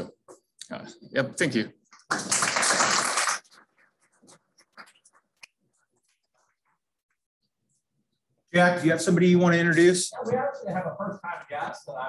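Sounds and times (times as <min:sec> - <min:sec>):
audience applauding: 0:02.1 - 0:03.6.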